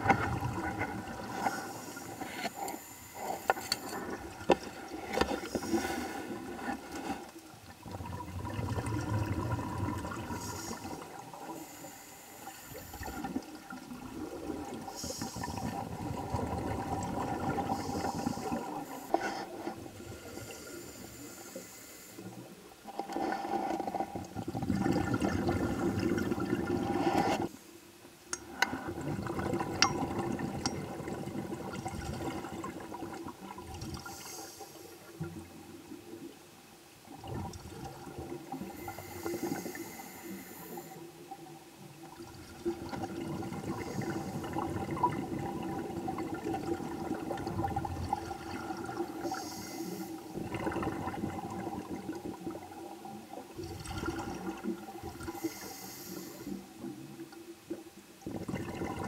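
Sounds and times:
regulator hissing inhale: 1.3s - 4.2s, 5.1s - 7.3s, 10.3s - 13.3s, 14.9s - 15.8s, 17.7s - 22.5s, 34.0s - 35.1s, 38.6s - 41.2s, 49.2s - 50.4s, 55.2s - 56.8s
faint ticks: 1.4s - 5.7s.

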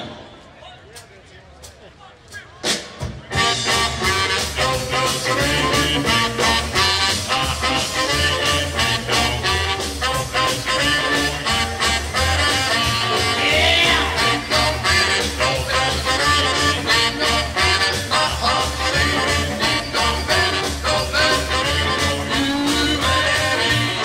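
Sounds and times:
live rhythm and blues band: 2.6s - 24.0s.

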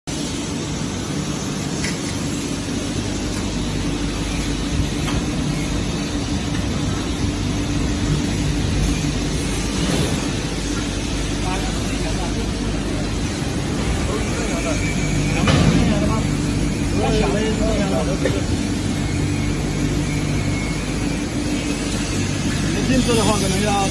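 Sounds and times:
parts washer machine humming: 0.1s - 23.9s.

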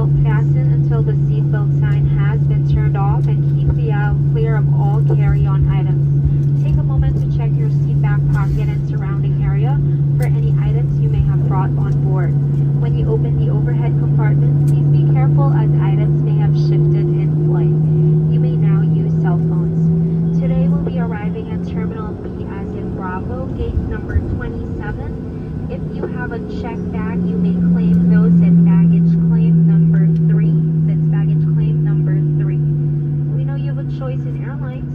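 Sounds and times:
jet engines droning in cabin: 0.0s - 34.9s
voices in cabin: 0.0s - 34.9s.

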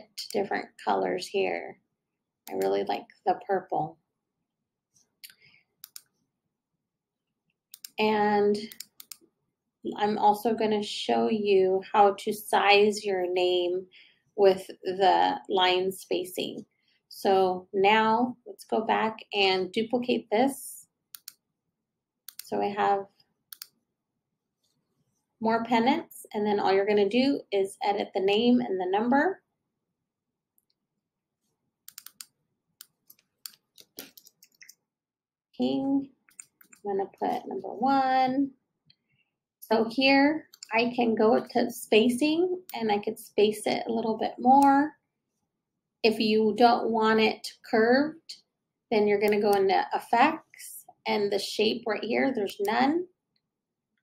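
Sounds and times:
computer mouse double-clicking: 5.3s - 6.1s, 7.7s - 8.0s, 8.7s - 9.2s, 21.2s - 21.4s, 23.5s - 23.7s, 31.9s - 34.8s.

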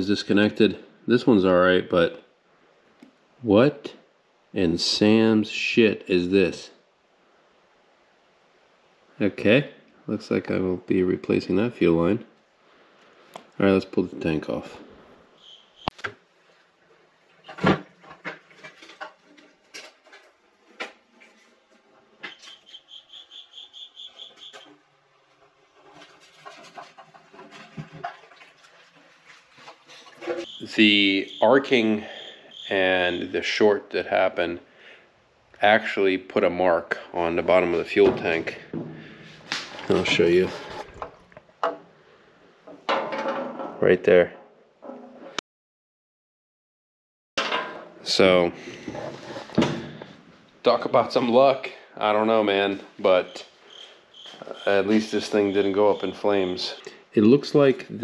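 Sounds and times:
rubbing sounds: 15.5s - 31.9s, 39.1s - 41.0s, 48.6s - 49.6s
metal tank scraping and clattering: 25.3s - 30.6s, 37.8s - 41.1s, 47.4s - 50.2s
thump: 49.6s - 50.1s.

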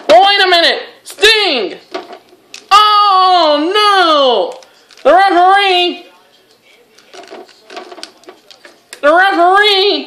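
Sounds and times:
plastic action figures clicking: 6.9s - 9.0s.

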